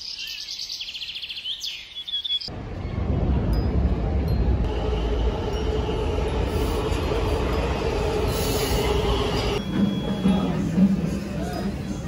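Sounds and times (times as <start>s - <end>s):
subway train rumble: 2.5s - 12.0s.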